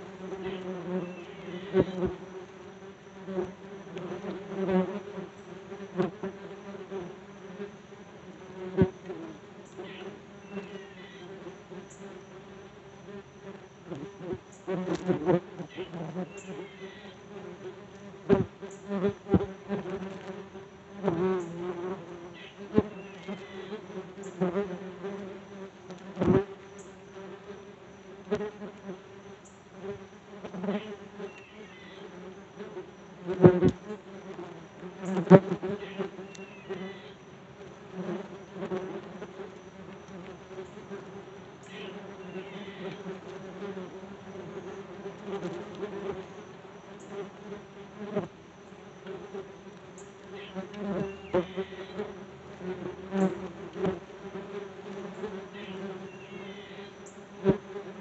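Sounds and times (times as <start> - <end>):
wasps buzzing: 0.0 - 58.0.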